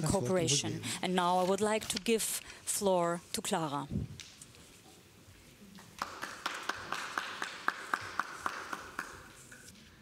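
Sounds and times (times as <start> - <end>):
hands clapping in echoing hall: 5.7 - 9.7.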